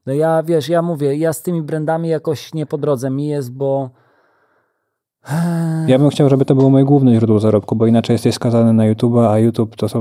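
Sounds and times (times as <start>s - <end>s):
man speaking: 0.0s - 3.9s, 5.3s - 10.0s
man breathing: 4.0s - 5.9s
man sighing: 5.2s - 6.0s.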